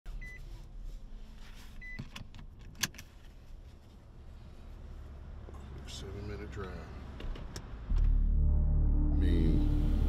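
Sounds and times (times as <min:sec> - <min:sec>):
seatbelt clicks: 0:02.0 - 0:03.1.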